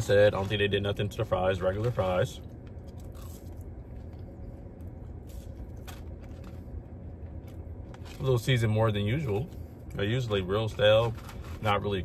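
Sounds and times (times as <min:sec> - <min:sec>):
low background hum: 0:00.0 - 0:12.0
person chewing french fries: 0:01.8 - 0:08.2.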